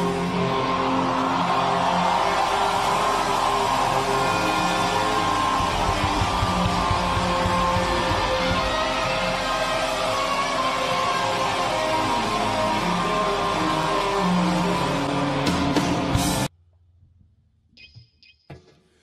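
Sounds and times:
electric guitar: 0.0 - 16.5
rock band instrumental: 0.0 - 16.5.

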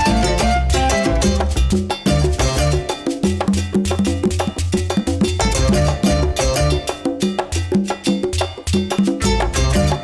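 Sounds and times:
upbeat latin dance music: 0.0 - 10.0.

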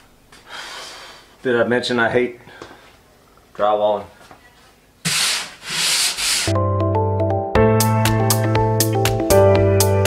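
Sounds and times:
hand sanding scraping strokes: 5.0 - 6.6
music with piano notes: 6.5 - 10.0.

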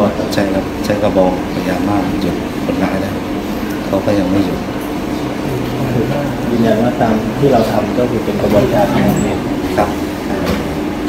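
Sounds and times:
man talking: 0.0 - 10.7.

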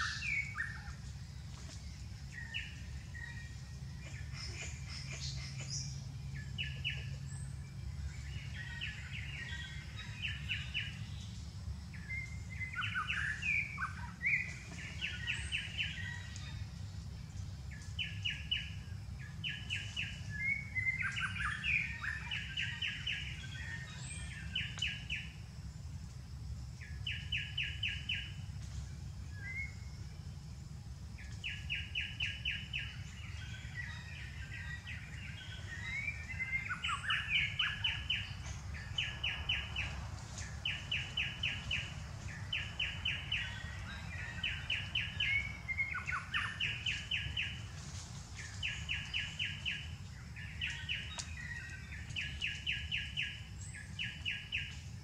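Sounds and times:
bird pulsed trill: 0.0 - 25.7, 26.7 - 55.0.

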